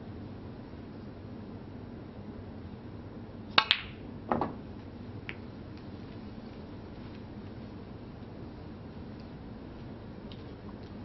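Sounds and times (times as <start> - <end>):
cue tip hitting ball: 3.6 - 4.6
snooker balls clicking: 3.6 - 4.6.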